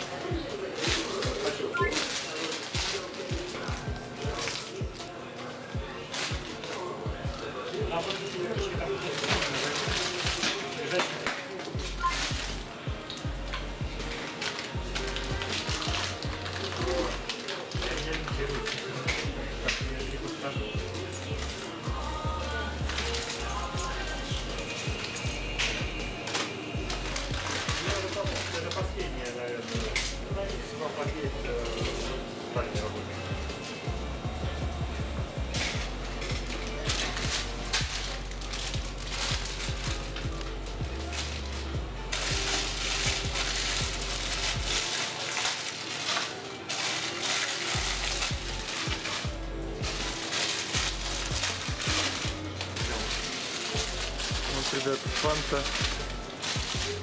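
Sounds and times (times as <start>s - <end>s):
plastic wrappers rustling: 0.0s - 34.3s, 35.3s - 57.0s
background music: 0.0s - 57.0s
faint voices: 0.0s - 57.0s.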